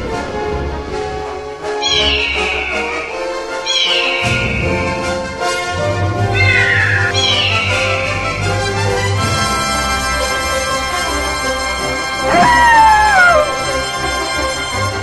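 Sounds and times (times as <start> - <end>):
background music with sustained notes: 0.0 - 15.0
high animal cries: 6.3 - 8.3.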